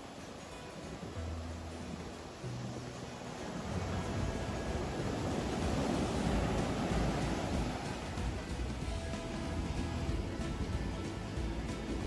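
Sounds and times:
ocean surf breaking: 0:00.0 - 0:12.0
wind on microphone: 0:00.0 - 0:12.0.

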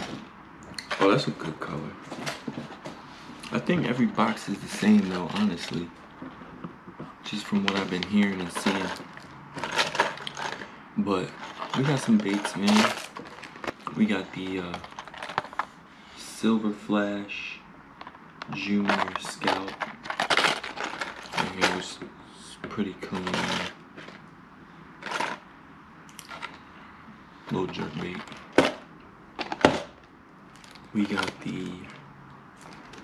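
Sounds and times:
plastic packaging crackling: 0:03.4 - 0:05.9, 0:07.3 - 0:15.8, 0:18.0 - 0:22.0, 0:23.0 - 0:24.2, 0:25.0 - 0:25.4, 0:27.5 - 0:28.8, 0:29.4 - 0:32.0, 0:32.6 - 0:33.0.

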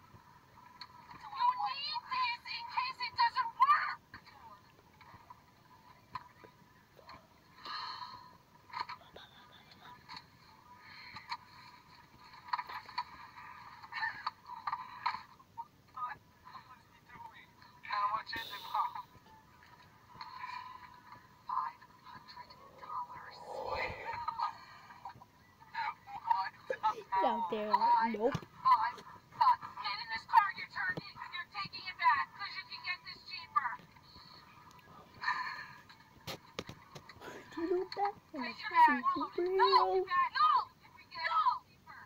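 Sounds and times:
tinny voices from phone speaker: 0:21.5 - 0:24.8.

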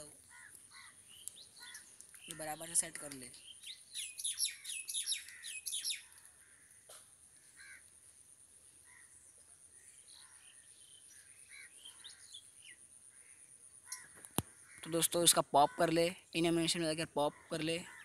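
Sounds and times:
birds chirping: 0:00.0 - 0:07.9, 0:08.6 - 0:18.0.

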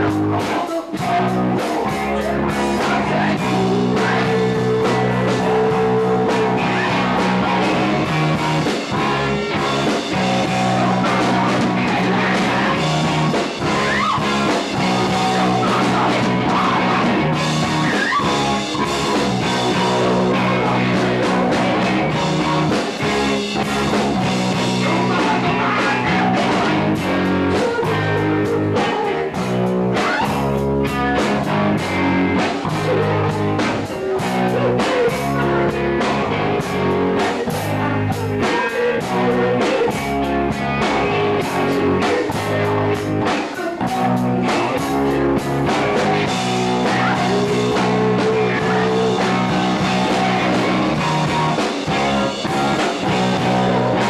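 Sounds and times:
drum kit: 0:00.0 - 0:54.0
electric guitar: 0:00.0 - 0:54.0.

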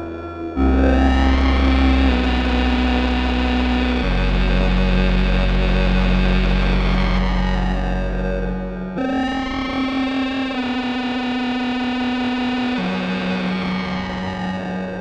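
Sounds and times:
buzzy synthesizer drone: 0:00.0 - 0:15.0.

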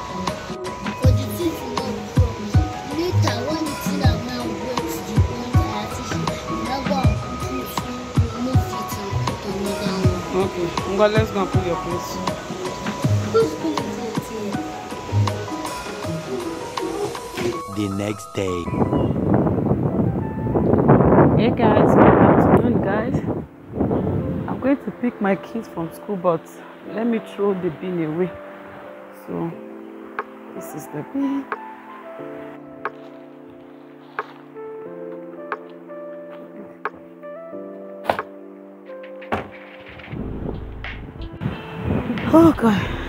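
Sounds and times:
background music with held notes: 0:00.0 - 0:43.0
wind buffeting microphone: 0:18.6 - 0:25.0, 0:40.0 - 0:43.0.

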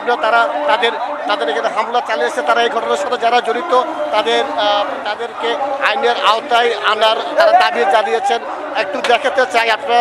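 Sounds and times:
men's voices talking: 0:00.0 - 0:10.0.

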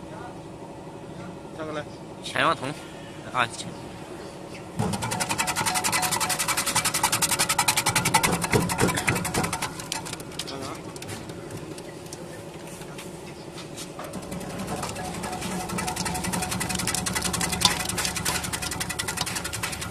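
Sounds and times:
slicing machine blades clattering: 0:04.8 - 0:11.7, 0:14.0 - 0:19.9.

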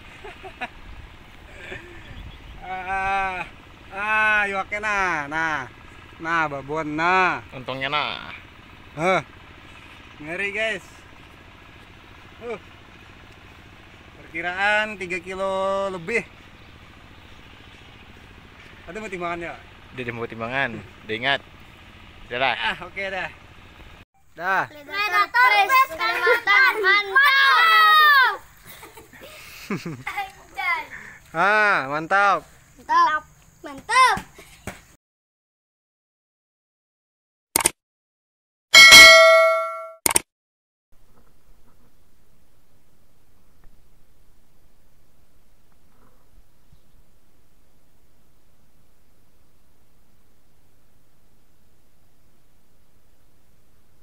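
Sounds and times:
engine idling: 0:00.0 - 0:27.0
bell-like ding: 0:38.8 - 0:40.0.

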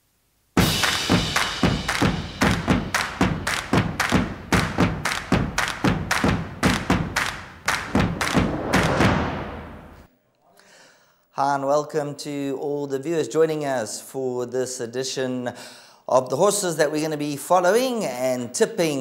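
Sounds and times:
intro music with heavy drum hits: 0:00.6 - 0:10.1.

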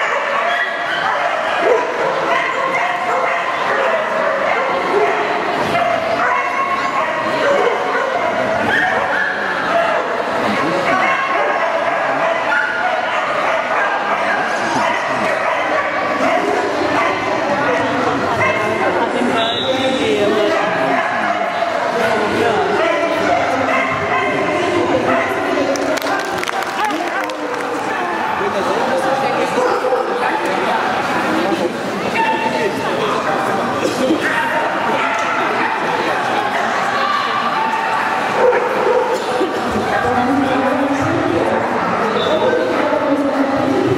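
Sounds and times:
dog barking and yipping: 0:00.0 - 0:05.2
crowd chatter: 0:00.0 - 0:43.9.

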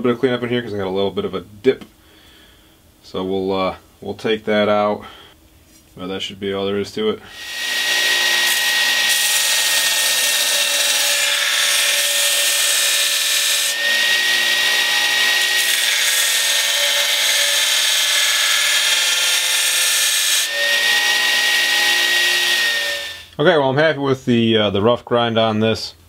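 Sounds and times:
belt grinder grinding steel blade: 0:07.3 - 0:23.3.

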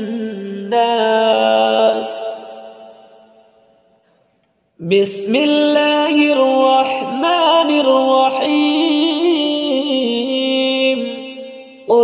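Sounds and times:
man chanting recitation: 0:00.0 - 0:03.1, 0:04.8 - 0:12.0.

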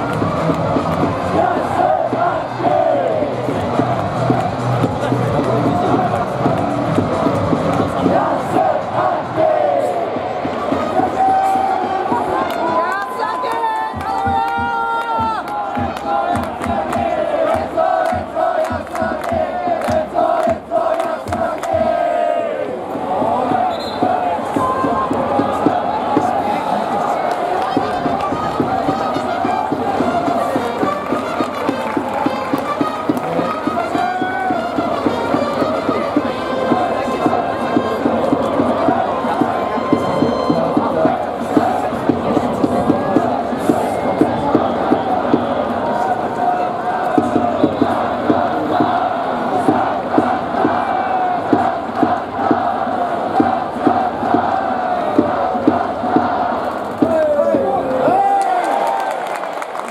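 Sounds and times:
stadium crowd chanting: 0:00.0 - 0:59.9.

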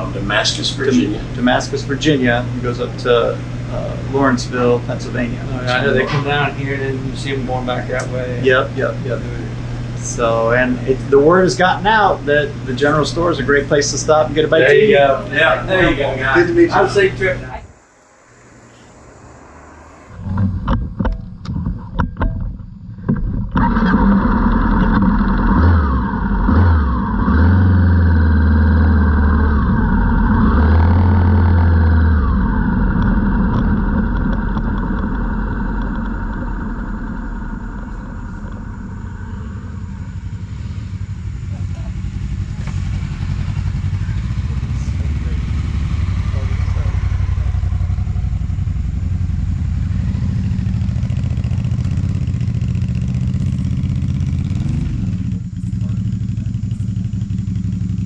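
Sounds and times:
motorcycle engines running: 0:00.0 - 0:58.0.

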